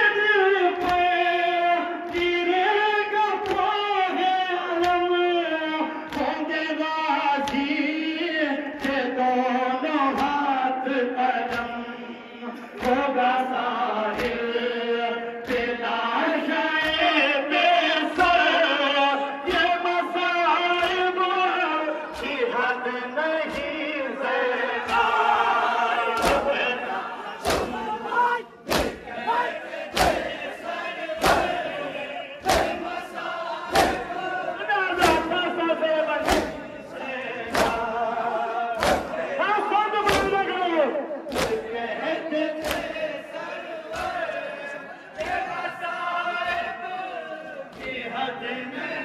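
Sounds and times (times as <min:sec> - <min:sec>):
men chanting in unison: 0:00.0 - 0:49.0
group chest slaps: 0:00.7 - 0:02.4, 0:03.3 - 0:03.8, 0:04.7 - 0:05.1, 0:08.6 - 0:09.1, 0:10.1 - 0:10.4, 0:11.4 - 0:11.8, 0:12.6 - 0:13.1, 0:14.1 - 0:14.7, 0:15.4 - 0:15.8, 0:16.8 - 0:17.2, 0:20.7 - 0:22.5, 0:23.4 - 0:23.8, 0:24.8 - 0:39.4, 0:40.0 - 0:40.6, 0:41.2 - 0:41.8, 0:42.5 - 0:45.6, 0:46.4 - 0:46.8, 0:47.5 - 0:48.0.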